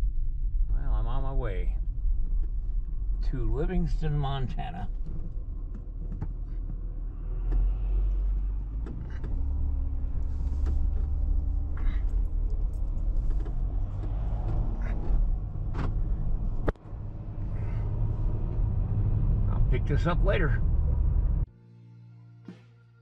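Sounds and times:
car tyre and engine rumble: 0.0 - 21.5.

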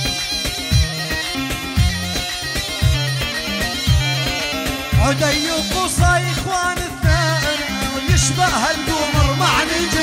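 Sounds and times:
reedy double pipe melody: 0.0 - 10.0
heavy drum beat: 4.9 - 10.0.

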